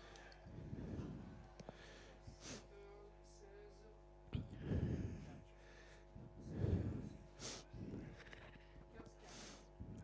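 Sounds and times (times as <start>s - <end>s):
muffled puffs of air: 0.0s - 2.7s, 4.4s - 8.3s
faint steady hum: 0.0s - 10.0s.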